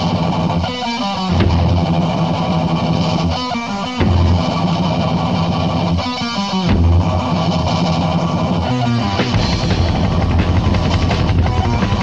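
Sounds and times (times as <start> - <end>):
bass guitar: 0.0 - 12.0
distorted electric guitar riff: 0.0 - 12.0.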